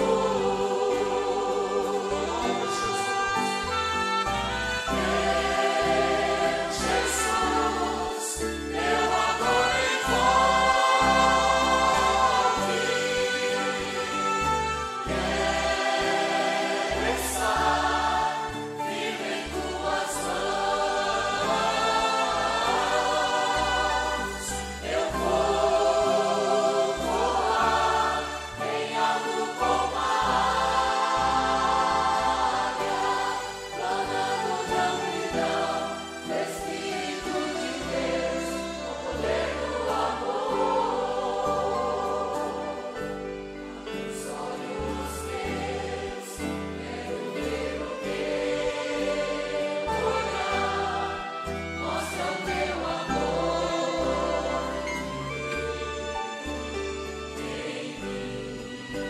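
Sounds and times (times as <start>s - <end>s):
saxophone: 0.0s - 26.2s, 49.8s - 57.4s
steady bass: 0.0s - 57.4s
choir and congregation singing: 0.0s - 59.0s
violins: 0.0s - 59.0s.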